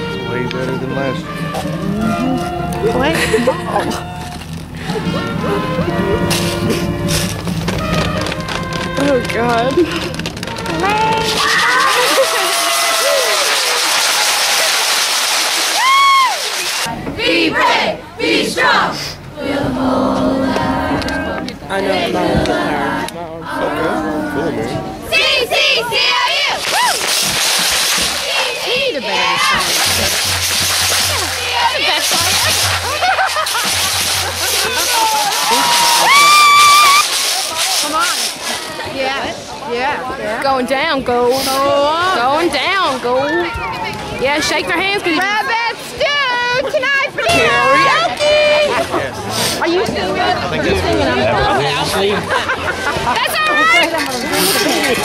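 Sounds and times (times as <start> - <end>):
crowd shouting and cheering: 0.0 - 55.0
crowd cheering and applauding: 7.5 - 16.9, 26.5 - 38.5
whoops and yells: 10.8 - 13.8, 15.8 - 16.5, 26.7 - 27.0, 34.8 - 37.1.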